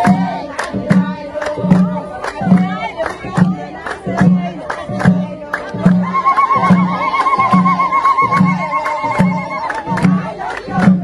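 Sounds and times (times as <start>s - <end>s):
hand claps: 0.0s - 11.0s
steady drum beat: 0.0s - 11.0s.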